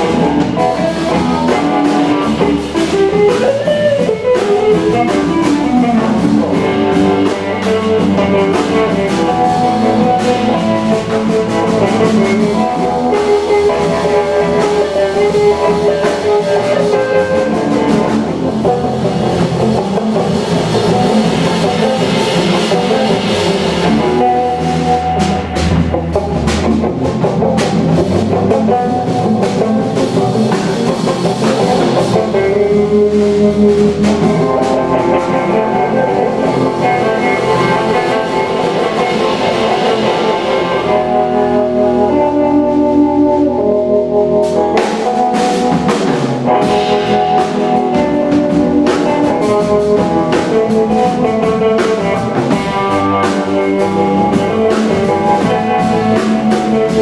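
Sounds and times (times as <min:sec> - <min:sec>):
drum kit: 0:00.0 - 0:57.0
electric bass: 0:00.0 - 0:57.0
electric guitar sustained notes: 0:00.0 - 0:57.0.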